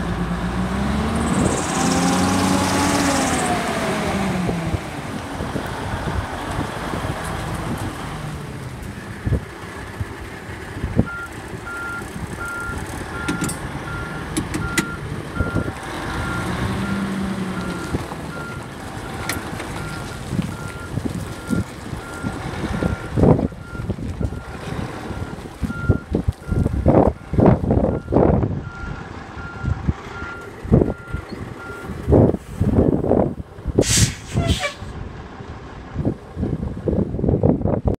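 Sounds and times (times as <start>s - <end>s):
truck diesel engine running: 0.0s - 37.8s
wind buffeting microphone: 3.3s - 37.9s
back-up alarm beeping: 11.1s - 17.0s.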